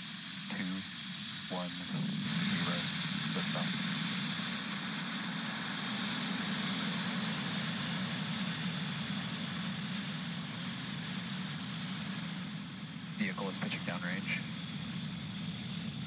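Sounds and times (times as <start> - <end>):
rocket exhaust rumble: 0.0 - 16.0.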